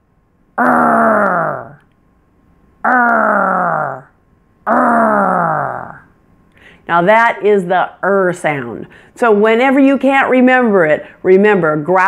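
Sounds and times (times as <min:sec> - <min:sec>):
woman growling: 0:00.6 - 0:01.8, 0:02.8 - 0:06.1.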